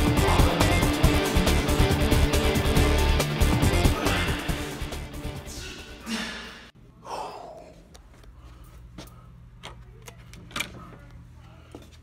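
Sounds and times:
background music: 0.0 - 6.6
breathy gasp: 5.5 - 7.7.

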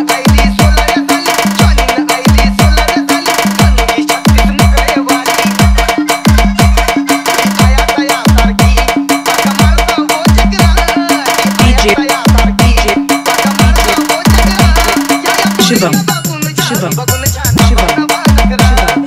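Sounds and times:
electronic dance music: 0.0 - 19.0
deep bass kicks: 7.6 - 8.9, 11.6 - 14.9, 17.6 - 19.0.

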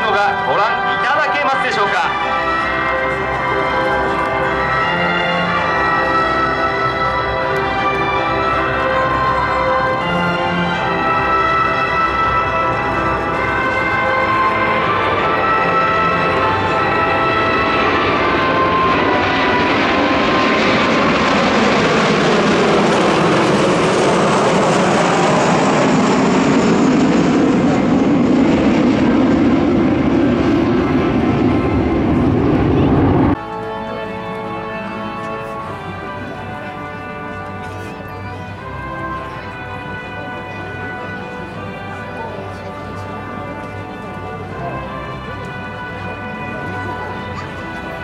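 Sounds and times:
jets flying low overhead: 0.0 - 48.0
music: 0.0 - 48.0.

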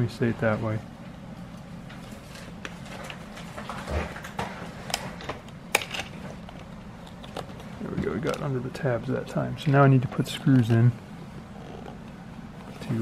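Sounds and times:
plastic parts clicking and tapping: 4.3 - 8.8.

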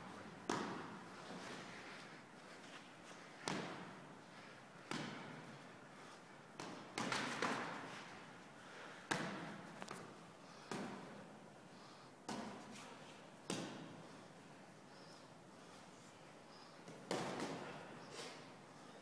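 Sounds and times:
boxing gloves punches echoing: 0.0 - 1.4, 3.4 - 4.0, 4.8 - 5.6, 6.5 - 8.0, 8.8 - 11.4, 12.3 - 12.8, 13.4 - 14.1, 16.8 - 17.9.

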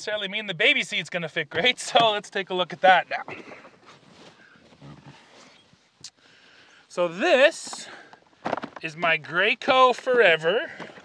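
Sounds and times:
faint shuffling: 1.4 - 11.0.

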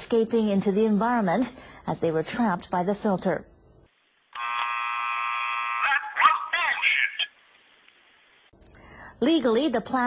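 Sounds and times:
electronic buzzer: 4.3 - 6.1
recorded voice exclamation: 5.8 - 7.3.

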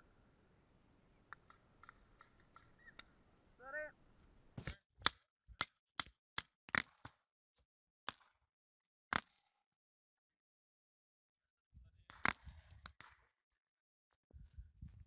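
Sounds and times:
paintball marker shots: 4.6 - 7.3, 8.1 - 8.4, 9.1 - 9.6, 12.1 - 13.3.

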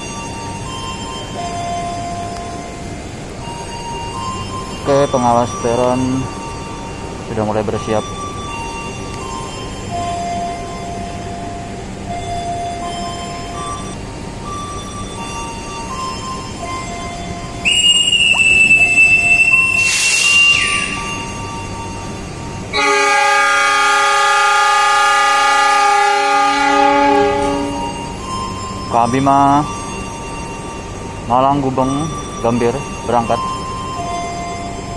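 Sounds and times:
whistle blast: 17.6 - 21.8, 22.7 - 28.0
locomotive horn chord: 17.6 - 28.4.

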